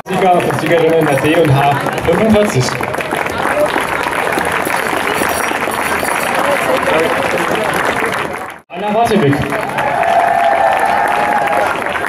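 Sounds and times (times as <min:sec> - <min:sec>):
audience applauding: 0:00.0 - 0:12.0
crowd voices: 0:00.0 - 0:12.0.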